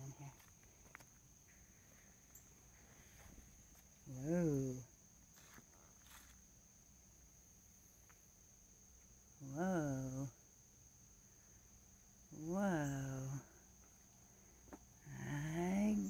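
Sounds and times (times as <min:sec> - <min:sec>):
crickets trilling: 0:00.0 - 0:16.0
footsteps on leaves: 0:05.4 - 0:06.4.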